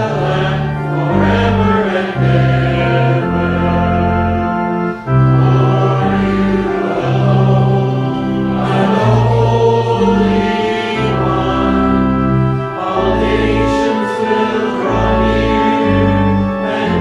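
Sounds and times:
congregation singing a hymn: 0.0s - 17.0s
organ bass notes: 0.0s - 17.0s.

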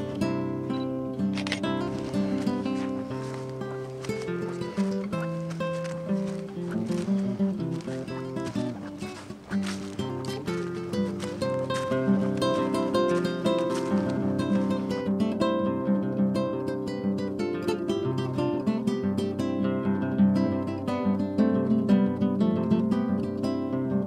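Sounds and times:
acoustic guitar music: 0.0s - 24.0s.

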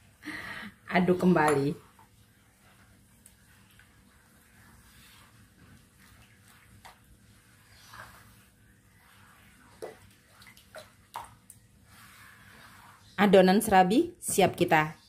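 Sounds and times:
batter sloshing in a bowl: 0.9s - 14.7s.

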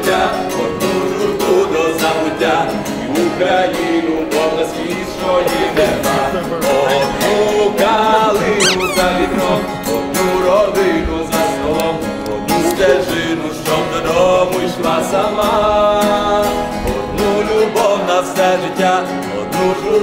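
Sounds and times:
guitar music with singing: 0.0s - 20.0s
high squeal: 8.6s - 9.3s.

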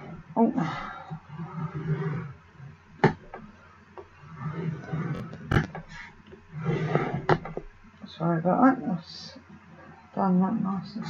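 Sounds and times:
scoring tool scraping through cardstock: 1.2s - 3.5s, 4.2s - 7.6s.

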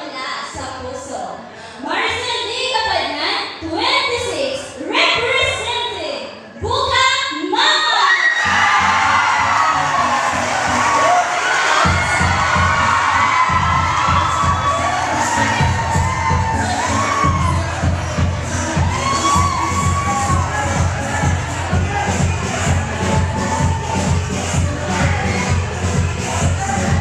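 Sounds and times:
audience cheering and shouting: 8.0s - 27.0s
music with heavy beat: 8.5s - 27.0s.

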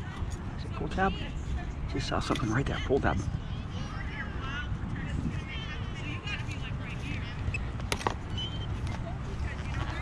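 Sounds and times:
distant children's voices: 3.2s - 10.0s.

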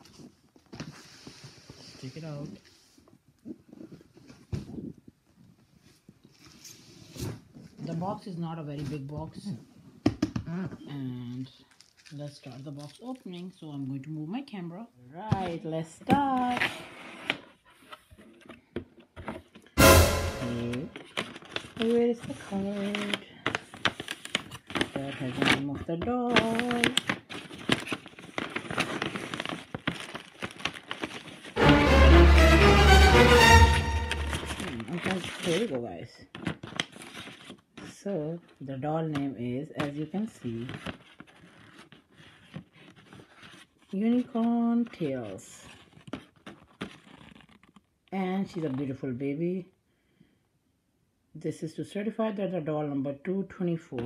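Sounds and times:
tissue paper crinkling: 11.6s - 13.6s, 20.7s - 25.6s, 26.2s - 31.9s, 34.1s - 37.9s, 40.4s - 47.8s.

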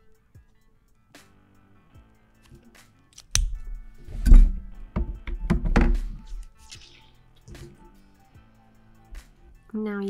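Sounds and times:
soft background music: 0.0s - 10.0s.

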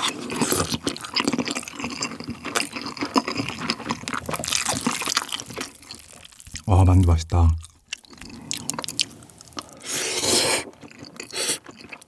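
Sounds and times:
wet chewing clicks and smacks: 0.0s - 6.7s, 7.6s - 9.9s, 10.5s - 12.0s.

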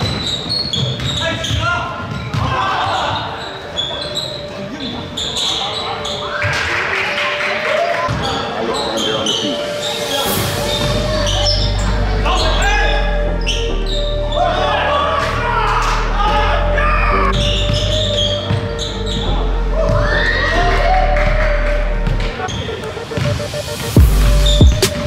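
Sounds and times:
players' voices: 0.0s - 25.0s
background music with bass: 9.5s - 25.0s.

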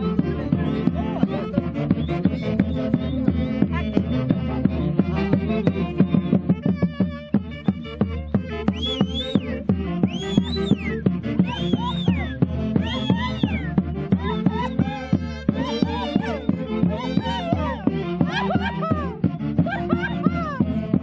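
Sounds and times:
fiesta music with drumbeat: 0.0s - 21.0s.

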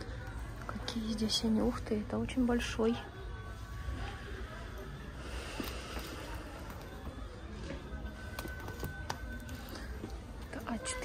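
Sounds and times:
quiet background music: 0.0s - 11.0s
sketchbooks clicking when handled: 8.2s - 9.8s.

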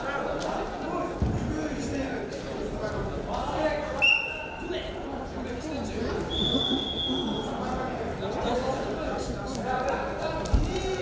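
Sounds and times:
echoing voices in sports hall: 0.0s - 11.0s.

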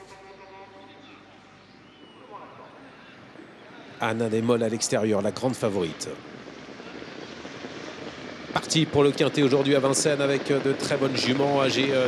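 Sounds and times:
distant voice: 0.0s - 12.0s
faint open-air ambience: 0.0s - 12.0s.

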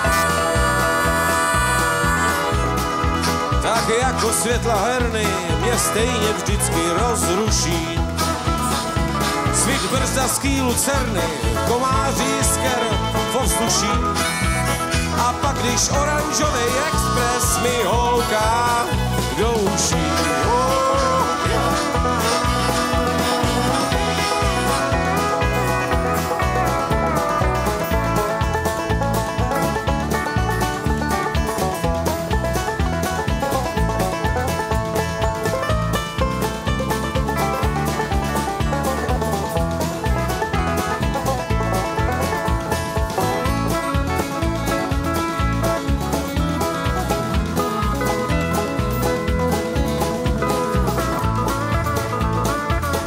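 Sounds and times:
country band playing: 0.0s - 53.0s
harmonica: 0.0s - 53.0s.

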